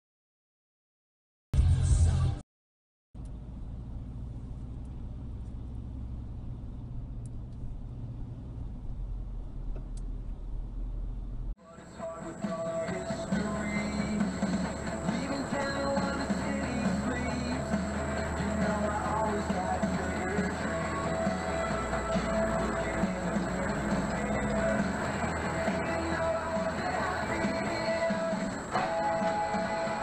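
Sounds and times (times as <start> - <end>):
music: 1.6 - 2.4, 11.6 - 30.0
car cabin engine and road drone: 3.2 - 30.0.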